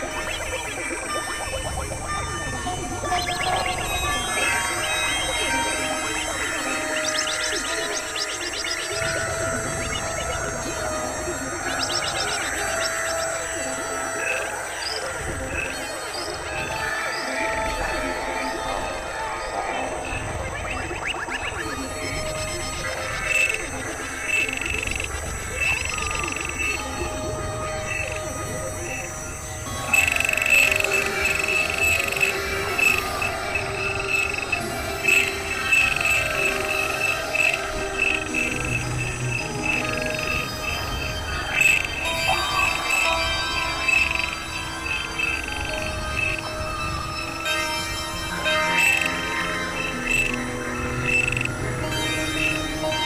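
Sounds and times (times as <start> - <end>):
experimental electronic drones: 0.0 - 53.0.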